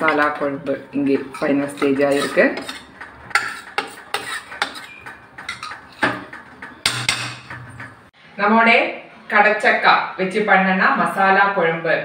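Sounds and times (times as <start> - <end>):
metal ladle knocking and scraping pot: 0.0 - 8.1.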